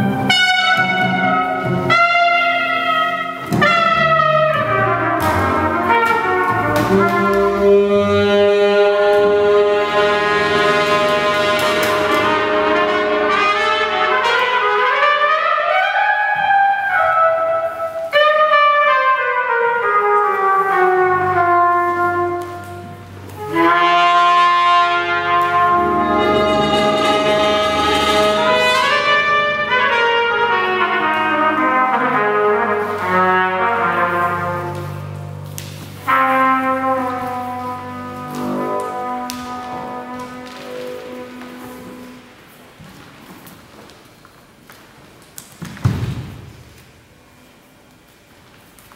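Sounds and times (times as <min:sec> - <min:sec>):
brass jazz ensemble sliding chords: 0:00.0 - 0:42.8.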